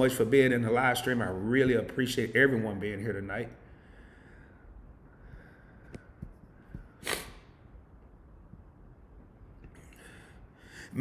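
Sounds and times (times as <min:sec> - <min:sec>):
man speaking: 0:00.0 - 0:03.6
man breathing in: 0:03.6 - 0:07.3, 0:09.8 - 0:11.0.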